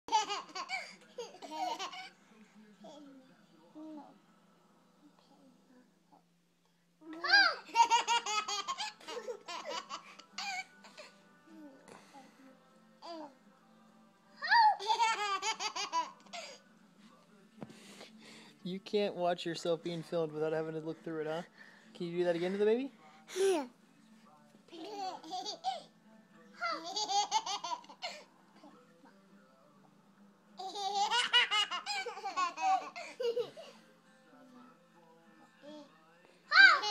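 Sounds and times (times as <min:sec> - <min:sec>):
baby laughing: 0:00.1 - 0:02.1, 0:07.7 - 0:10.6, 0:14.6 - 0:16.5, 0:24.8 - 0:25.9, 0:26.7 - 0:28.2, 0:30.6 - 0:33.8, 0:36.7 - 0:36.9.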